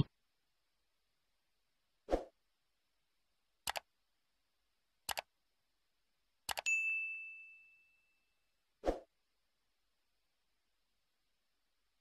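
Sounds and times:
mouse clicks: 3.6 - 3.9, 5.1 - 5.3, 6.5 - 6.7
notification bell ding: 6.7 - 8.1.

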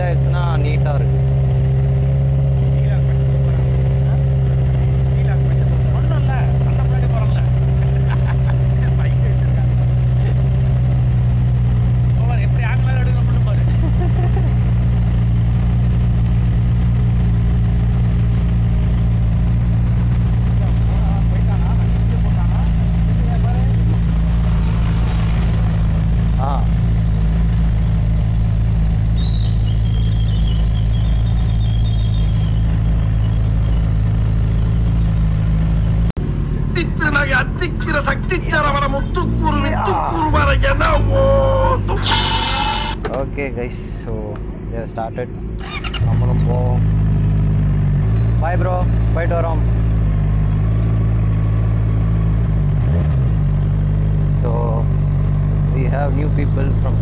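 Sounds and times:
motorcycle engine idling: 0.0 - 42.0, 45.6 - 52.0.

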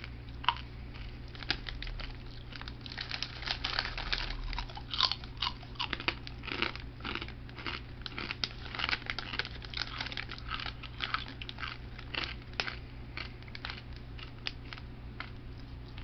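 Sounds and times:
person chewing crunchy snack: 0.0 - 16.0.

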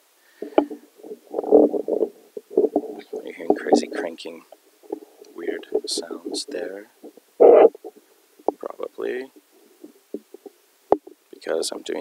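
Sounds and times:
microphone handling noise: 0.4 - 11.2.

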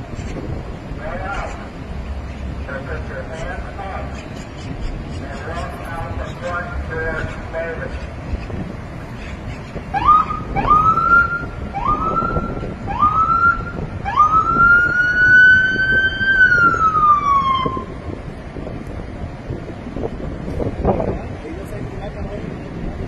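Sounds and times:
police siren whooping and wailing: 9.9 - 18.1.

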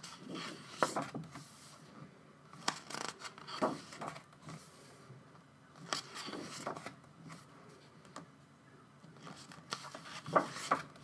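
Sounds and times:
pages being turned: 0.1 - 1.8, 2.6 - 4.7, 5.8 - 7.4, 9.2 - 11.0.

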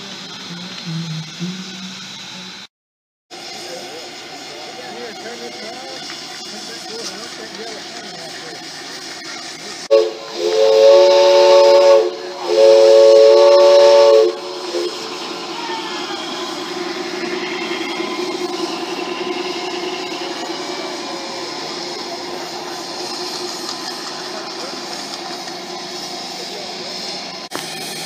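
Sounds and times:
train running noise: 0.0 - 2.7, 3.3 - 28.0
chime train whistle blasts: 9.9 - 21.5.

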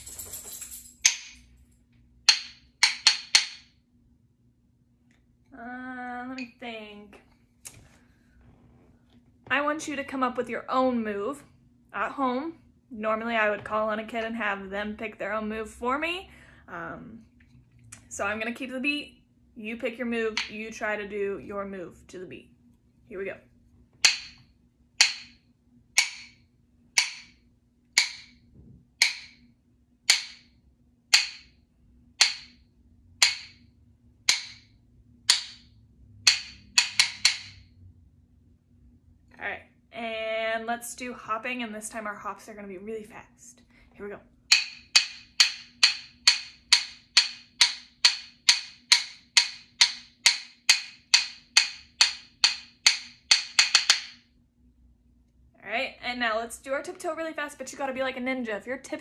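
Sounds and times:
rhythm sticks clicking: 2.3 - 3.7, 24.0 - 29.5, 30.1 - 30.5, 31.1 - 31.6, 32.2 - 32.6, 33.2 - 37.6, 44.5 - 54.2.

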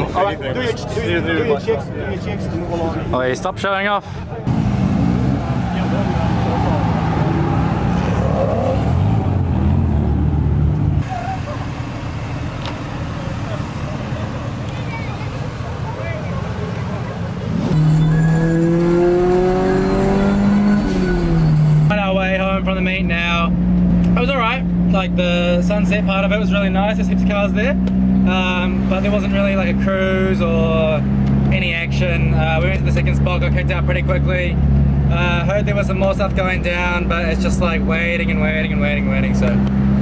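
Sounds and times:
car engines running: 0.0 - 40.0
car accelerating: 4.4 - 40.0
voices: 5.5 - 8.9, 11.0 - 18.3, 19.2 - 39.6.

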